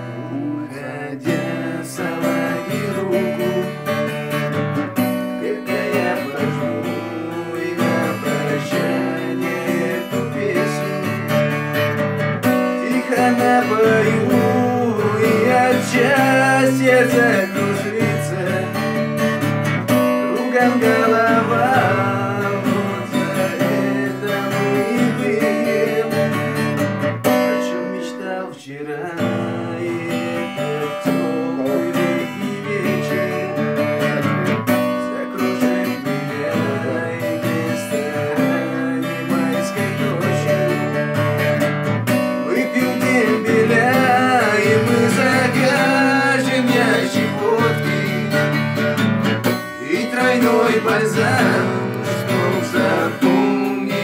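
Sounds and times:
person singing: 0.0s - 41.6s, 42.2s - 54.0s
acoustic guitar: 0.0s - 54.0s.

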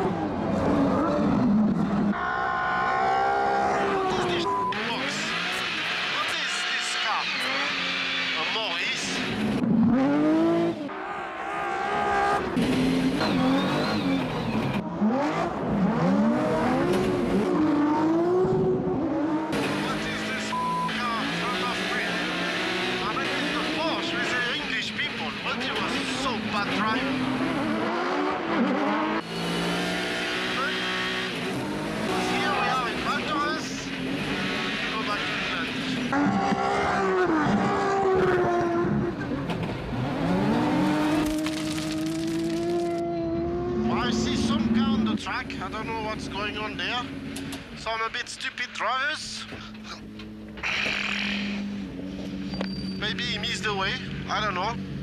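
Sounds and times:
race car engine revving: 0.0s - 48.0s, 49.4s - 55.0s.

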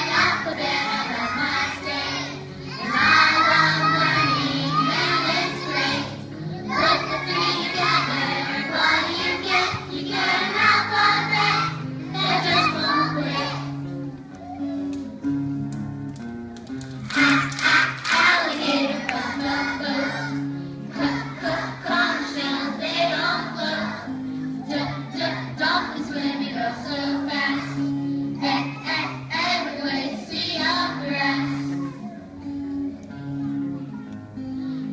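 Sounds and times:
children's choir singing: 0.0s - 13.9s, 17.1s - 33.3s
backing music track: 0.0s - 34.9s
instrumental accompaniment: 0.0s - 34.9s.

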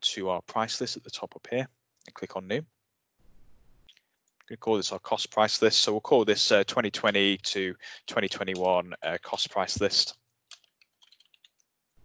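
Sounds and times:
faint keyboard typing: 8.1s - 11.7s.

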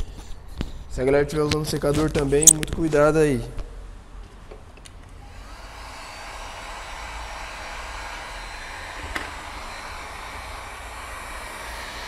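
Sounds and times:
short click: 2.4s - 2.7s
heat gun fan whoosh: 5.2s - 12.0s.

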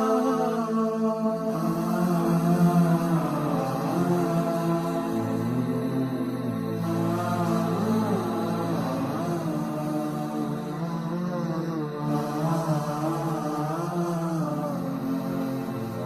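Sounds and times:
chant-like vocal melody: 0.0s - 16.0s
held low drone tones: 1.4s - 16.0s.

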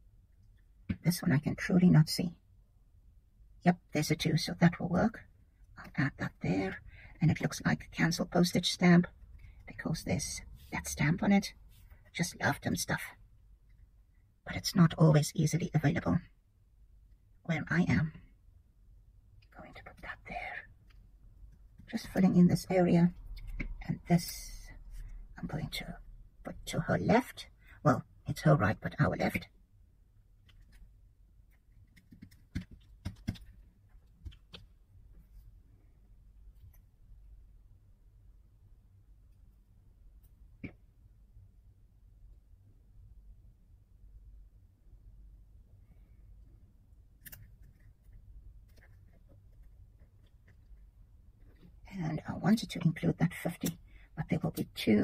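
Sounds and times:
low room hum: 0.0s - 55.0s
person whispering: 5.8s - 13.2s, 19.4s - 20.9s.

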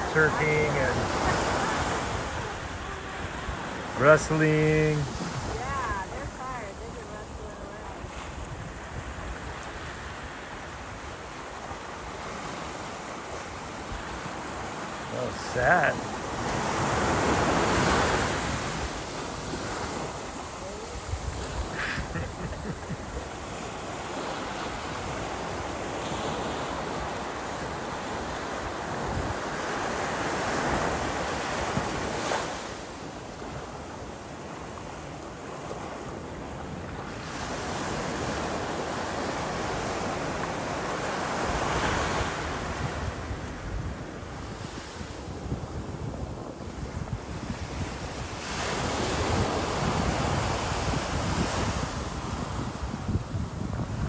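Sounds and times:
wind buffeting microphone: 0.0s - 15.0s, 15.6s - 54.0s
small waves breaking on beach: 0.0s - 54.0s.

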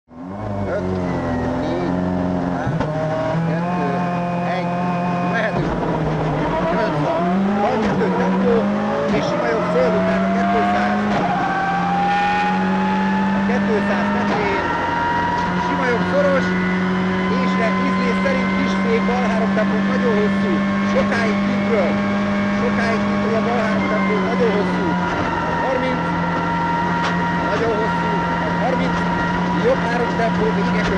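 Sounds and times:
rally car engine accelerating: 0.1s - 30.9s.

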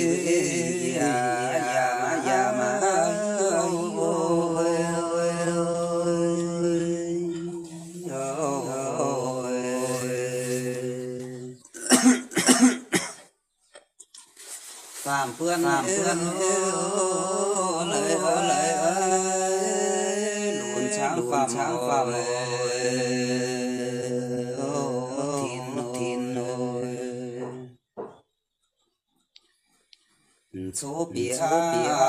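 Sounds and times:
person singing: 0.0s - 11.8s, 15.0s - 27.8s, 30.6s - 32.0s
person coughing: 11.8s - 13.3s.

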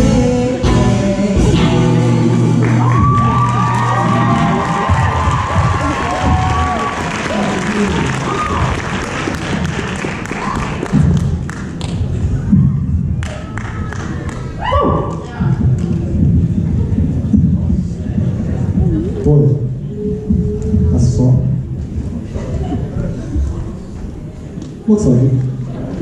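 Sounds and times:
audience applauding and cheering: 2.4s - 16.5s.

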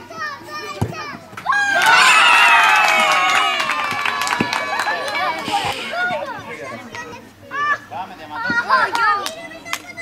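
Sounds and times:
children shouting: 1.4s - 6.7s.

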